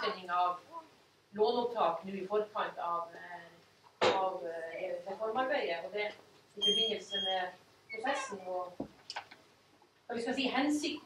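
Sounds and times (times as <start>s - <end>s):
woman speaking: 0.0s - 0.7s, 1.4s - 8.8s, 10.1s - 11.0s.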